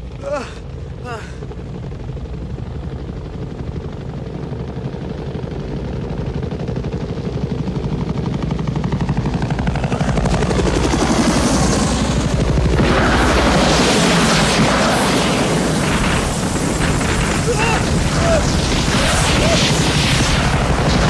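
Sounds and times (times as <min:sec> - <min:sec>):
helicopter rotor chop: 0:00.0 - 0:21.0.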